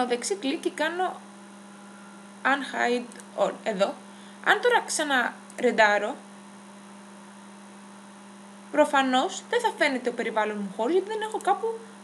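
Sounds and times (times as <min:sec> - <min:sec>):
electrical hum: 0:00.0 - 0:12.0
person speaking: 0:02.4 - 0:06.2, 0:08.7 - 0:11.8.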